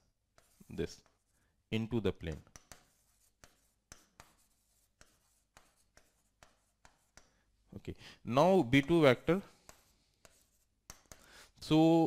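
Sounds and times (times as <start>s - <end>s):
pen tapping on a screen: 9.7s - 11.2s.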